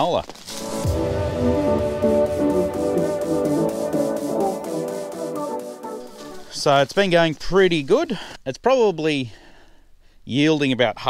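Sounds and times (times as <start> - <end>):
instrumental intro music: 0.5 - 6.8.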